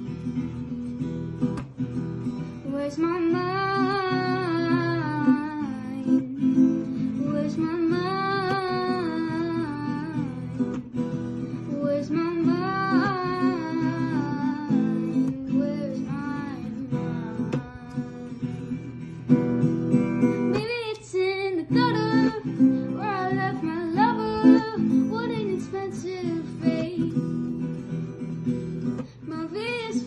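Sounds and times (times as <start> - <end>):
strummed acoustic guitar: 0.0 - 30.0
woman singing: 2.4 - 28.0, 28.8 - 30.0.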